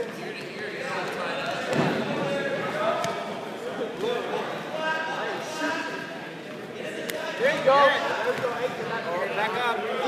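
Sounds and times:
thud: 1.7 - 2.2.

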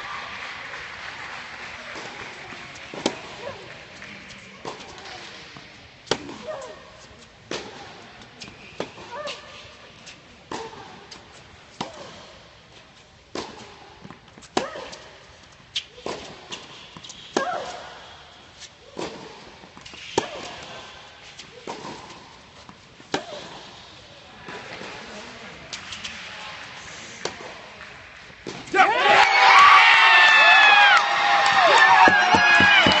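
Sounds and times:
racket striking tennis ball: 2.9 - 3.6, 4.3 - 9.5, 10.5 - 12.4, 13.3 - 18.0, 19.0 - 23.8, 31.7 - 33.0
ball bounces: 32.0 - 33.0.

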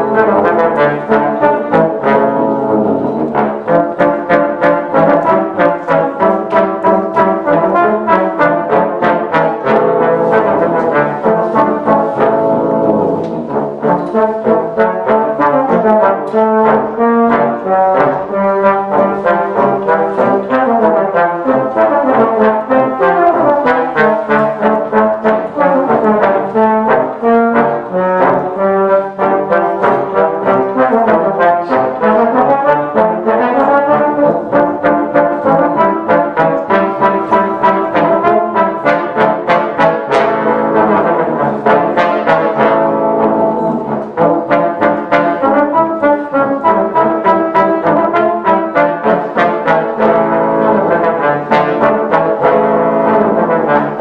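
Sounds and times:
trombones playing in harmony: 0.0 - 54.0.

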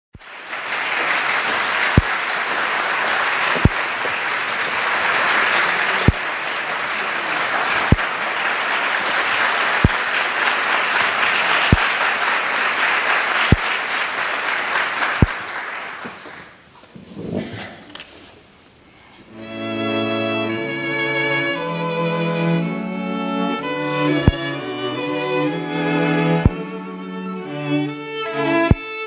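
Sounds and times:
audience applauding: 0.1 - 16.7.

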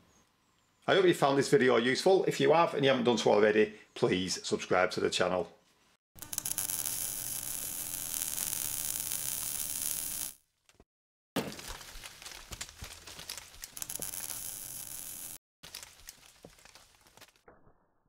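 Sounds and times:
crackling with clicks: 6.2 - 10.4, 12.2 - 17.4
static-like hissing: 6.2 - 10.4, 13.8 - 15.4.

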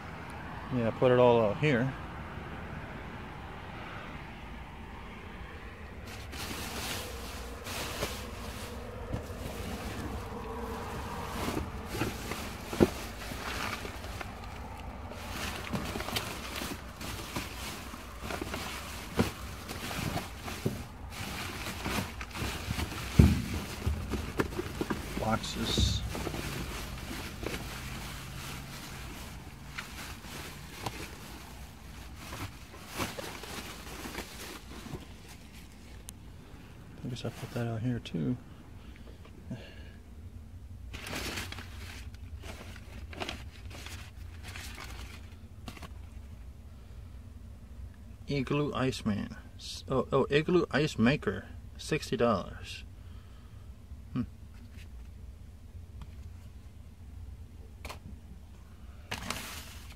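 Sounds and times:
papers shuffling: 6.0 - 36.0, 40.9 - 46.1, 59.1 - 59.9
plastic bags rustling: 6.0 - 36.0, 40.9 - 46.1, 59.1 - 59.9.

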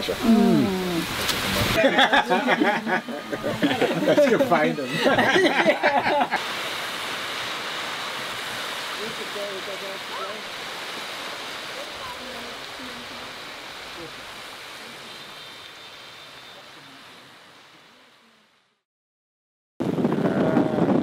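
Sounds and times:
waves washing on pebbles: 0.0 - 17.2.

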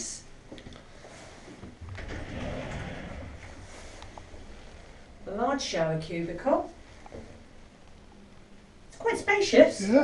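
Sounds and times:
glass sliding door rumbling on rollers: 1.8 - 4.9.

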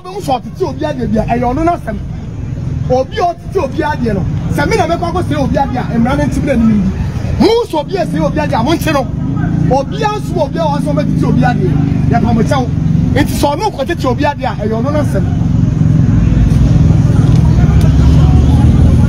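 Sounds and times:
men talking: 0.0 - 19.0
vehicle engine humming: 0.0 - 19.0.

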